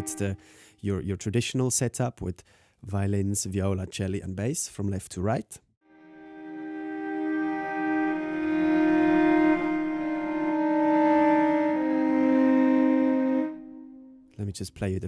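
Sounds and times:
bowed strings slow chord: 0.0 - 0.7, 5.9 - 14.3.

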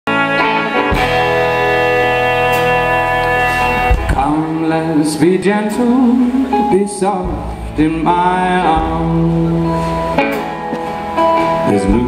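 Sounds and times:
resonator guitar chords: 0.1 - 12.0.

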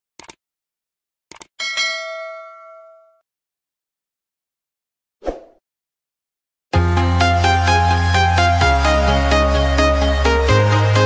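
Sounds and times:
notification bell ding: 1.6 - 3.2.

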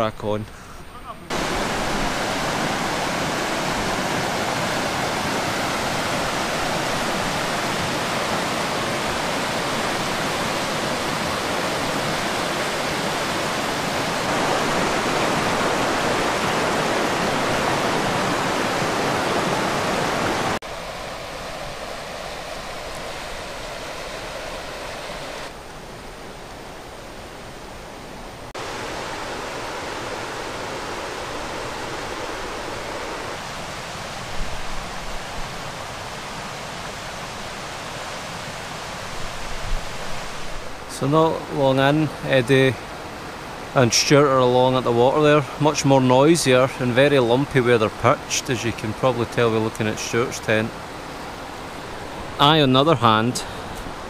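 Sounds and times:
river rapids rushing over rocks: 1.3 - 25.5, 28.6 - 44.3.

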